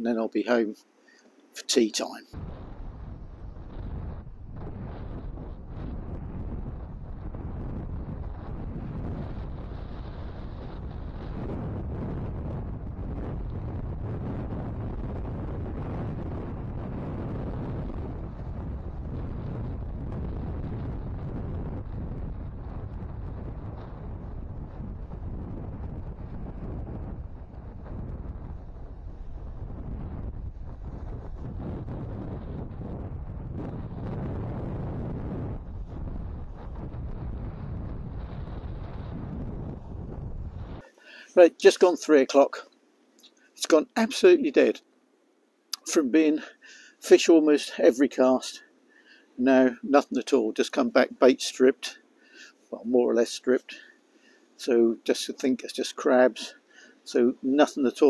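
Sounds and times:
wind on microphone: 2.3s - 40.9s.

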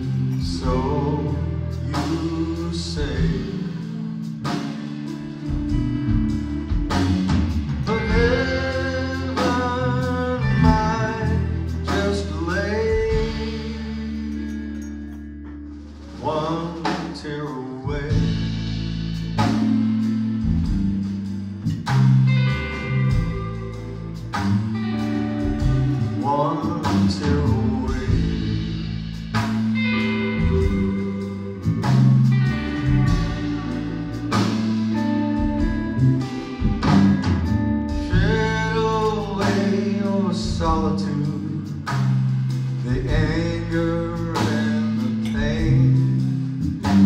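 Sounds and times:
electric guitar lead with bent notes: 0.0s - 17.2s, 17.9s - 47.0s
blues-rock band playing: 0.0s - 47.0s.

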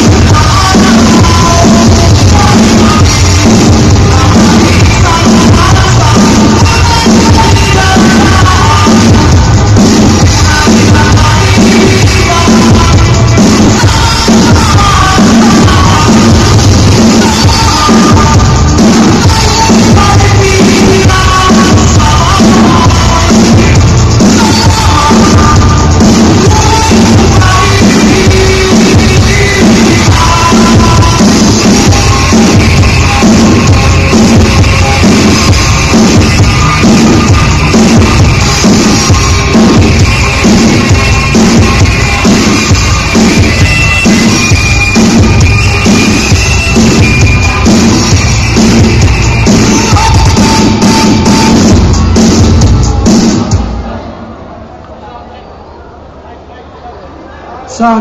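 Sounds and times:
live rock band playing: 0.0s - 53.6s
drum kit beat: 0.0s - 53.7s.

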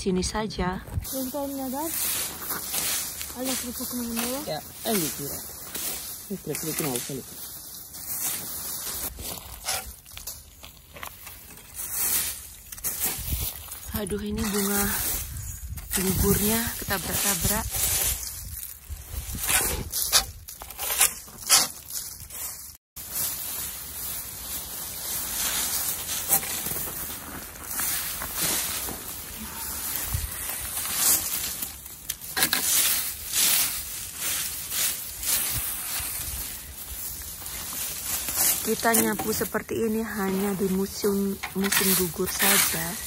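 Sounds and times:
leaves raked across soil: 0.9s - 43.0s.

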